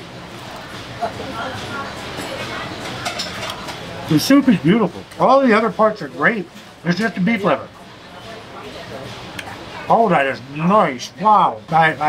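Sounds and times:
faint voices: 0:00.2 - 0:12.0.

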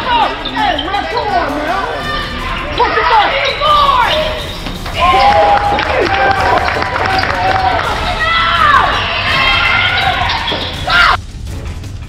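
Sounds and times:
sneakers squeaking: 0:00.0 - 0:11.2
voices calling out: 0:00.0 - 0:11.2.

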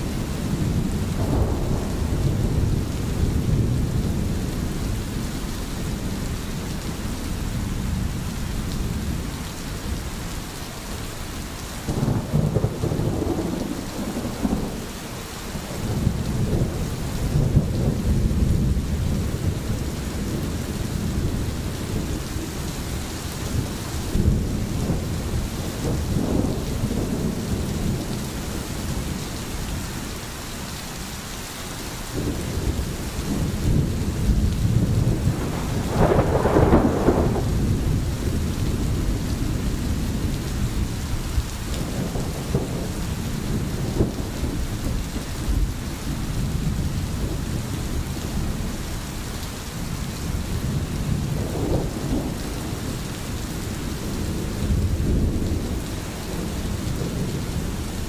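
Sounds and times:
distant rolling thunder: 0:00.0 - 0:10.5, 0:11.8 - 0:30.2, 0:32.1 - 0:58.0
steady rain: 0:00.0 - 0:58.0.

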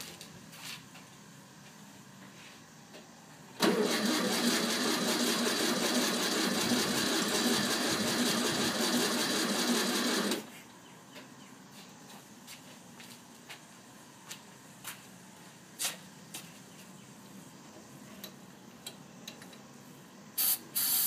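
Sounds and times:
engine cranking without firing: 0:03.6 - 0:10.5.

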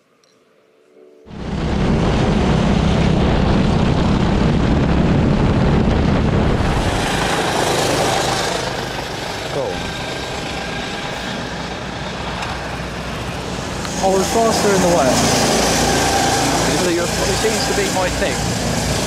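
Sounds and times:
wind noise: 0:01.3 - 0:19.0
go-kart engine: 0:01.4 - 0:19.0.

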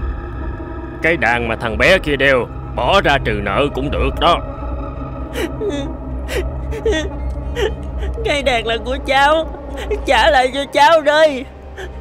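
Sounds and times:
low steady hum: 0:00.0 - 0:12.0
child gasping and whimpering: 0:05.4 - 0:08.5, 0:09.6 - 0:10.1, 0:11.8 - 0:12.0.

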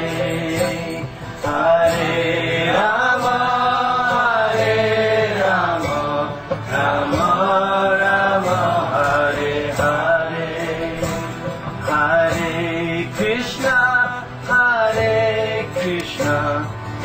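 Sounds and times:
devotional chant singing: 0:00.0 - 0:17.0.

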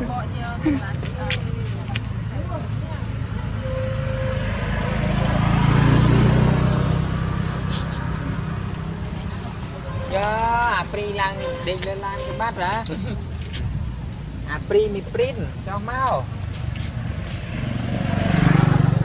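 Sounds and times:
vehicle driving past: 0:03.0 - 0:12.6, 0:16.8 - 0:19.0.

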